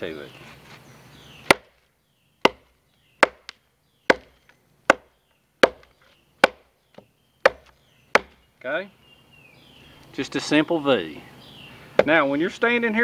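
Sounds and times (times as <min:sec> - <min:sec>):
machete chopping log: 0:01.4 - 0:01.8, 0:02.4 - 0:08.5, 0:12.0 - 0:12.2.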